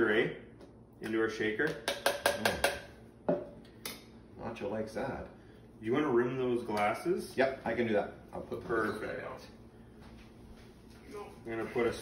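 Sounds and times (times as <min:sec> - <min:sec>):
metal spoon knocking plastic cup: 0:01.7 - 0:02.9.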